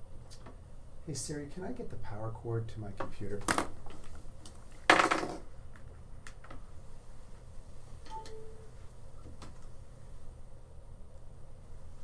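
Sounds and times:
steady low hum: 0.0s - 12.0s
faint beep: 8.1s - 8.7s.

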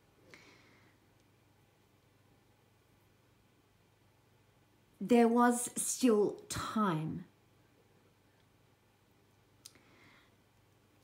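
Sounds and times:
faint sharp click: 9.6s - 9.9s.

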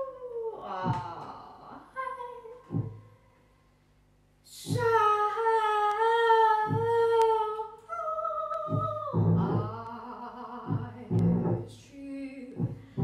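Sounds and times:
low notes: 5.8s - 11.8s.

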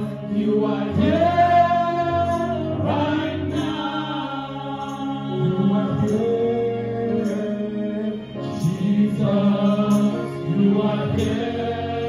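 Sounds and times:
voices singing gospel: 0.0s - 12.0s.

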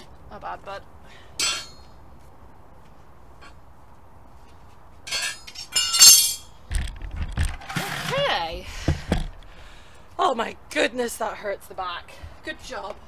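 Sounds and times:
metal tools clinking: 1.4s - 1.8s, 5.1s - 6.6s.

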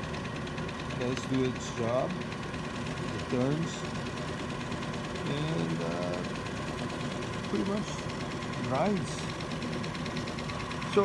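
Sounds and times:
ball mill humming and whining: 0.0s - 11.0s.

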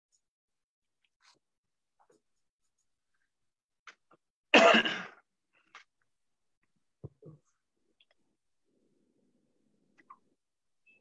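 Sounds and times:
person coughing: 4.5s - 5.2s.

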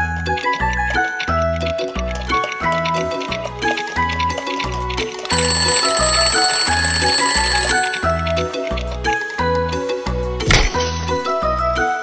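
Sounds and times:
alarm clock bell ringing: 5.3s - 8.4s.

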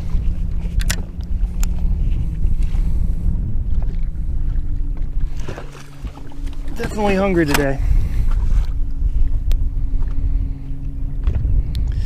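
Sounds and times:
steady low hum: 0.0s - 12.0s
wind buffeting microphone: 0.0s - 12.0s.

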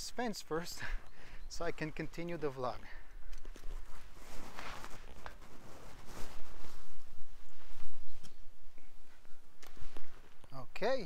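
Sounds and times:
rustling and scuffing: 3.4s - 10.5s.

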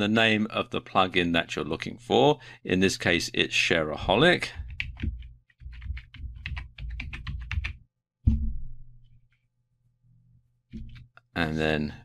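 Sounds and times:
computer keyboard typing: 4.6s - 7.8s
loud thump: 8.3s - 8.9s.

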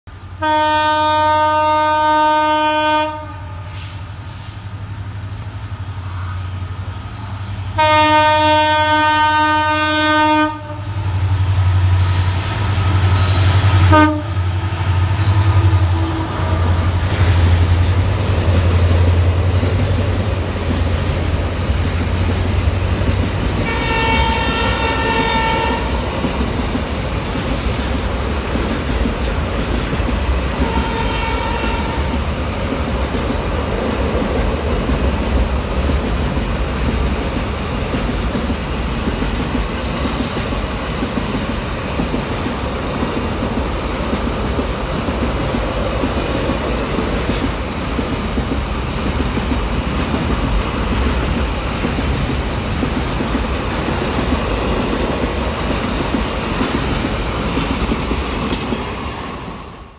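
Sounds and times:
train wheels rumbling on rails: 0.1s - 59.9s
train horn: 0.4s - 4.0s, 7.7s - 17.1s, 23.2s - 26.4s, 30.4s - 32.5s.

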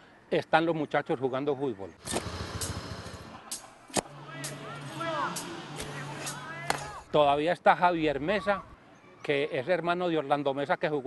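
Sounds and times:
distant players shouting: 2.5s - 7.2s.

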